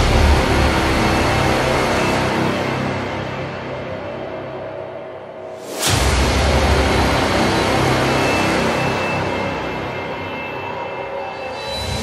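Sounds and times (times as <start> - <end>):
dramatic music: 0.0 - 12.0.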